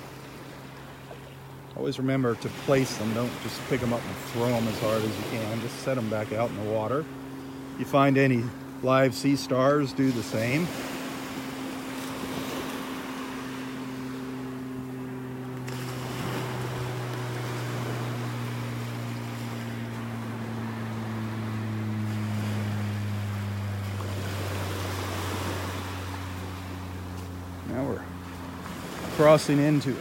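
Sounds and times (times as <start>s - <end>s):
motorboat engine droning: 0.0s - 30.0s
small waves washing onto sand: 0.0s - 30.0s.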